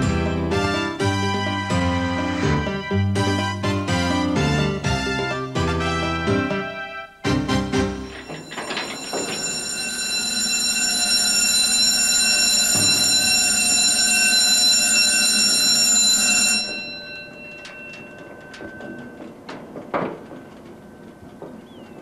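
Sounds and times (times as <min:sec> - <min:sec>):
warning alarm: 0:07.9 - 0:19.5
metallic clanks: 0:08.0 - 0:09.8.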